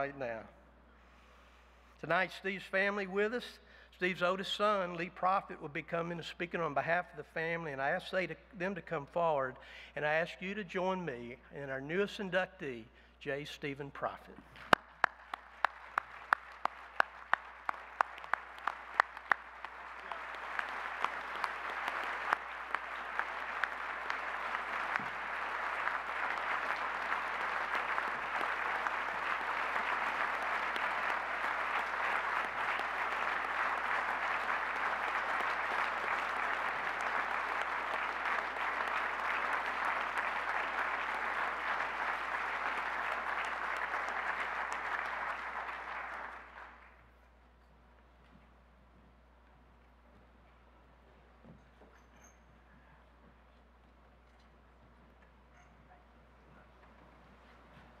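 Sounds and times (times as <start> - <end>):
audience applause: 14.7 - 47.0.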